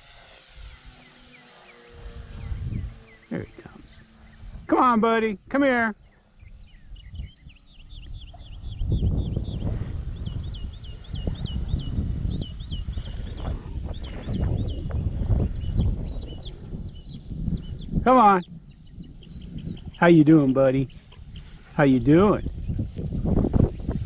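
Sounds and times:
bird chirping: 0.5 - 5.0, 5.8 - 23.0
uneven low rumbling: 1.9 - 24.0.

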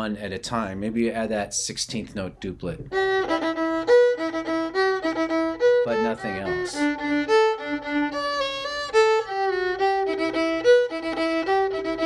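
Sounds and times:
solo fiddle melody: 2.9 - 12.0.

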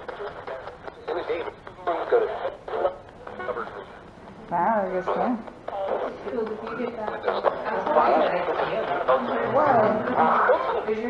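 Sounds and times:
radio static: 0.0 - 11.0
tinny broadcast voice fragments: 0.0 - 11.0.

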